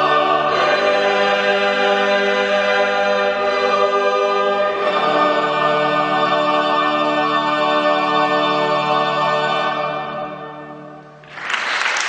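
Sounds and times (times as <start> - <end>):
choir singing held chords: 0.0 - 11.2.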